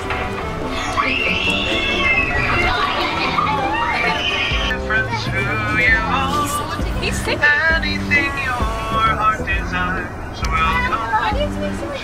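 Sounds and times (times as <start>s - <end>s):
coach bus running noise: 0.0s - 12.0s
song with singing voice: 3.8s - 9.5s.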